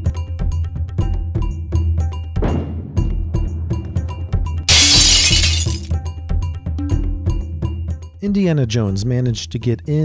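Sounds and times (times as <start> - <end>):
crashing shattering sound effect: 4.7 - 5.9.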